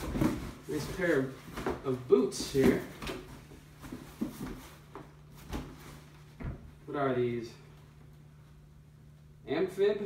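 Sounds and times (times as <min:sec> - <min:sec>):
cardboard knocks and scrapes: 0:00.0 - 0:06.6
low steady hum: 0:00.0 - 0:10.0.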